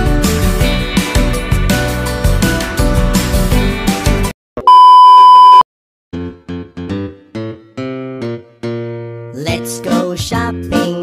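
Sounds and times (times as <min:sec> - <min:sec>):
loud electronic beep: 0:04.7 - 0:05.6.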